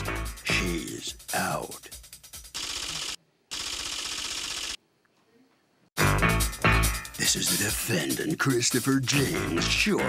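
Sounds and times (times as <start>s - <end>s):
rapid typing clicks: 2.5s - 4.8s.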